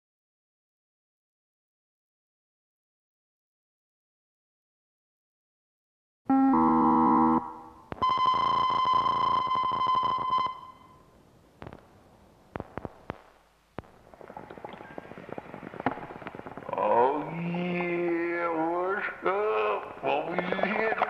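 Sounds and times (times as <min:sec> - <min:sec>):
synthesizer chord: 0:06.3 - 0:07.9
held high synthesizer tone: 0:06.3 - 0:10.9
sharp clicks: 0:12.5 - 0:16.8.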